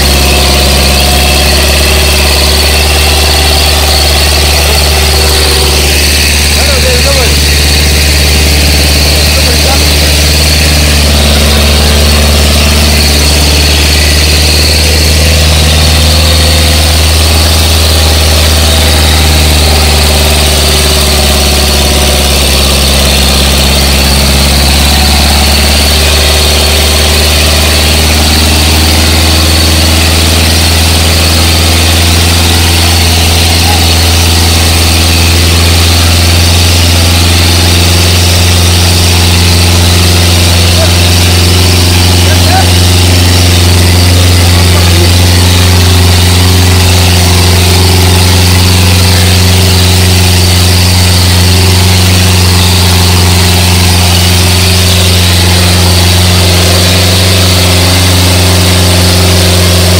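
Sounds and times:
tractor diesel engine under load: 0.0s - 59.9s.

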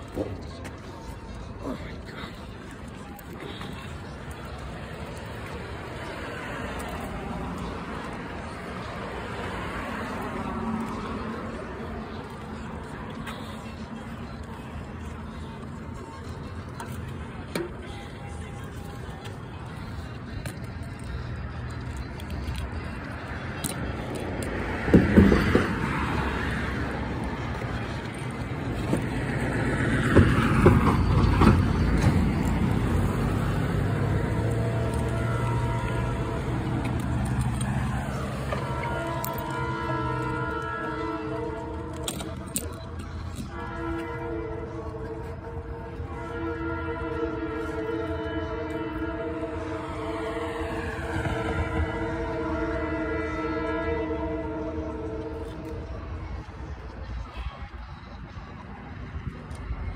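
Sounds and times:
road vehicle passing: 0.0s - 59.9s
train horn chord: 30.0s - 42.8s, 43.4s - 56.0s.

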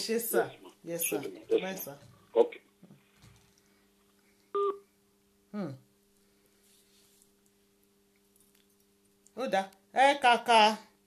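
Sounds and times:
faint steady hum: 0.0s - 11.0s
telephone beep: 4.6s - 4.8s.

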